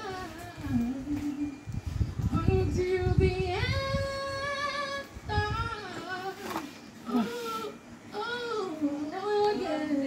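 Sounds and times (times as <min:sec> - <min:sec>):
low rumbling room noise: 0:00.0 - 0:10.0
woman singing a cappella: 0:00.0 - 0:10.0.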